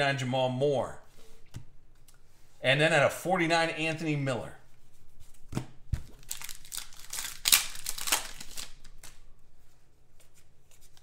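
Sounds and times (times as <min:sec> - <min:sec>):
foil wrapper crinkling: 0:06.1 - 0:09.2.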